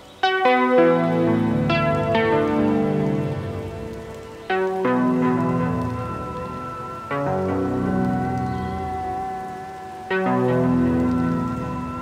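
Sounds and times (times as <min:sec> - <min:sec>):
instrumental music: 0:00.2 - 0:12.0
faint hiss: 0:01.2 - 0:12.0.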